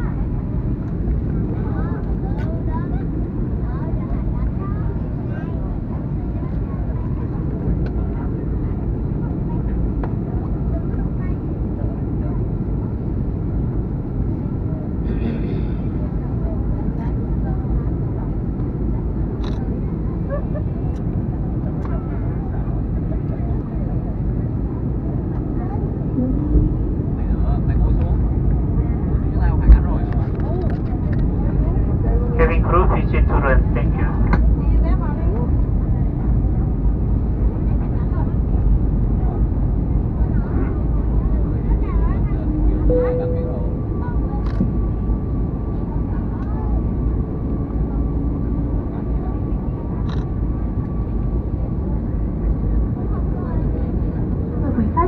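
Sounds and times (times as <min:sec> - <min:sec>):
airliner cabin rumble: 0:00.0 - 0:55.0.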